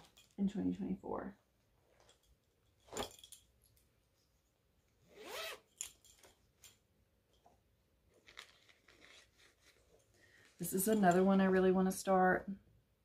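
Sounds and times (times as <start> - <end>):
handling rustles and clicks: 0.0 - 0.4, 1.8 - 11.4
zipper pulled open: 5.1 - 5.9, 8.1 - 9.9.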